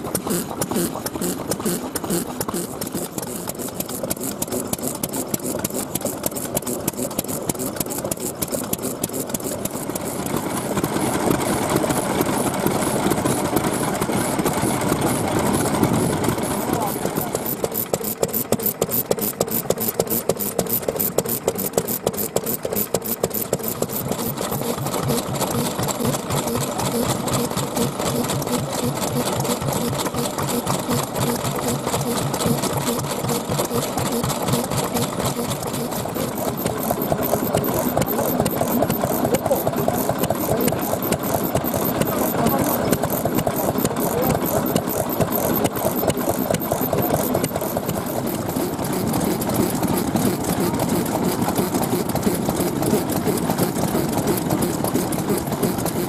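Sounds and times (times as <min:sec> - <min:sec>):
stationary engines clattering: 0:00.0 - 0:56.0.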